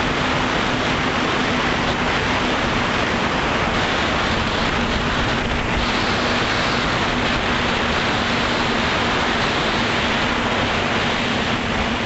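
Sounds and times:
wind and propeller noise: 0:00.0 - 0:12.0.

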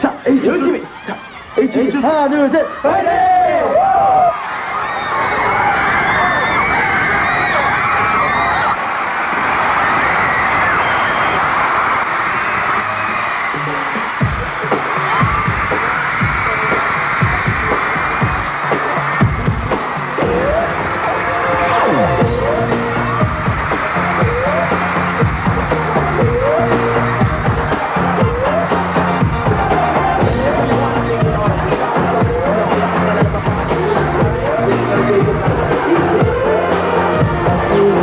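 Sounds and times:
crowd noise: 0:00.0 - 0:38.0
dance track with heavy beat: 0:13.5 - 0:38.0.

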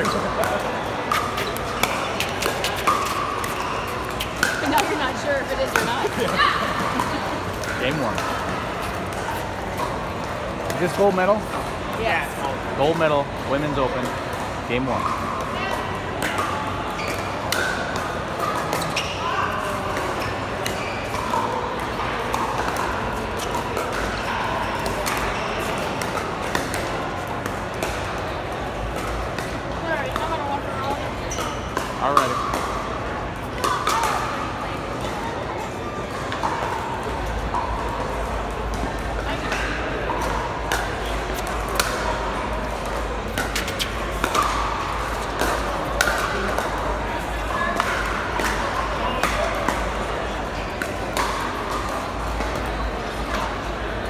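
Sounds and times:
paddles hitting plastic ball: 0:00.0 - 0:11.7, 0:19.9 - 0:24.2, 0:24.8 - 0:30.4, 0:36.1 - 0:53.7
voices chattering: 0:00.0 - 0:54.0.

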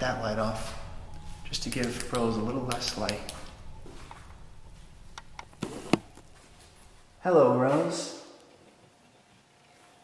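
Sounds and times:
sharp clicks or knocks: 0:05.1 - 0:06.3.

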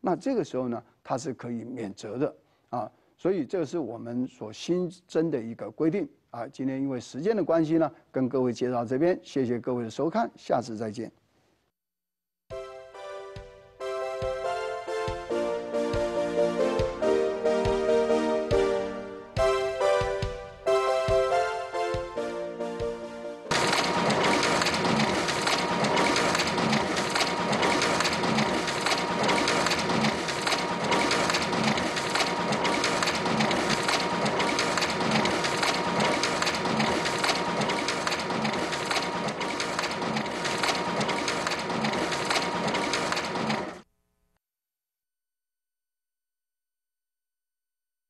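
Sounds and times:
photocopier whine: 0:23.5 - 0:43.8
photocopier paper feed running: 0:23.5 - 0:43.9.

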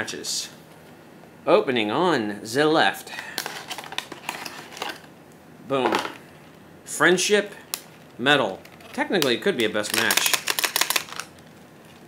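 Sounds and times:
plastic package crackling open: 0:03.4 - 0:05.1, 0:07.7 - 0:12.0.

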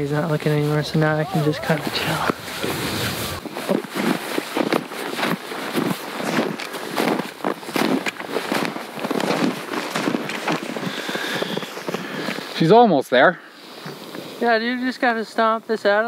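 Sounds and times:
boots crunching through snow: 0:00.1 - 0:12.7.

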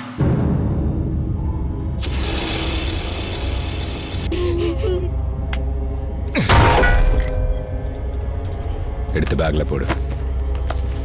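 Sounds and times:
low drone: 0:00.0 - 0:09.5
gas torch hissing: 0:02.0 - 0:04.3.

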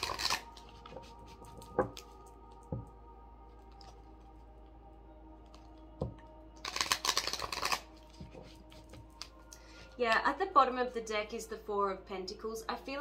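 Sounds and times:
cards being shuffled: 0:00.0 - 0:02.2, 0:06.6 - 0:09.4.

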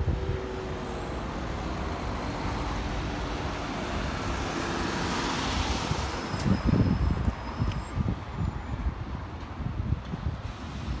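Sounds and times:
wind buffeting microphone: 0:00.0 - 0:04.6, 0:05.5 - 0:11.0
road traffic passing: 0:00.0 - 0:11.0.

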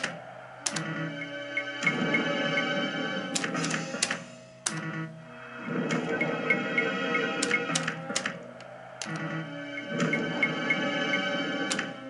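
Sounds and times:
slot machine music: 0:00.0 - 0:12.0
slot machine reel stop clicks: 0:03.3 - 0:05.1, 0:05.8 - 0:08.4, 0:11.6 - 0:11.9.

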